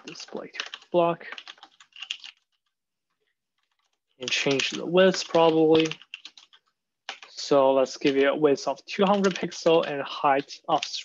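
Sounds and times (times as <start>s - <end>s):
typing on computer keyboard: 0.0s - 2.8s, 3.6s - 7.4s, 9.0s - 11.0s.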